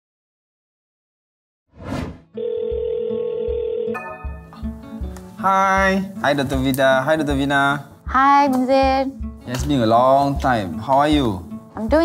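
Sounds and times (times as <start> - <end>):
short whoosh: 1.8 - 2.2
video call ringing tone: 2.3 - 4.6
background music beat: 3.4 - 12.0.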